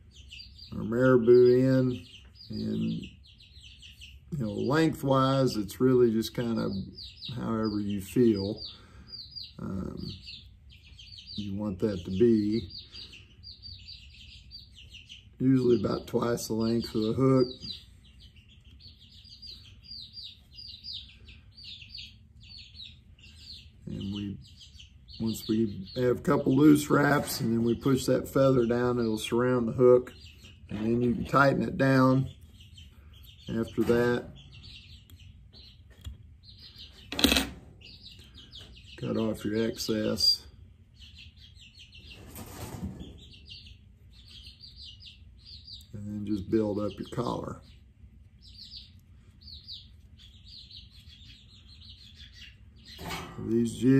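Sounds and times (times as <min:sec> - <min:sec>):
baby chicks peeping: 0:00.0 - 0:53.9.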